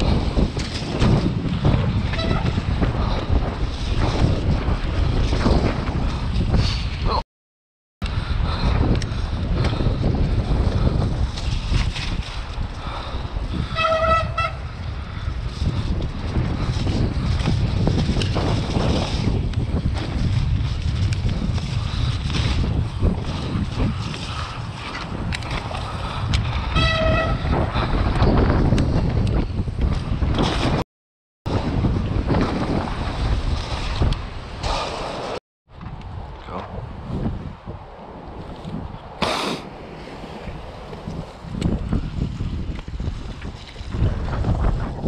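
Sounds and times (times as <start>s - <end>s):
bike tyre noise and rattles: 0.0s - 7.2s, 8.0s - 30.8s, 31.5s - 45.0s
wind on microphone: 0.0s - 7.2s, 8.0s - 30.8s, 31.5s - 45.0s.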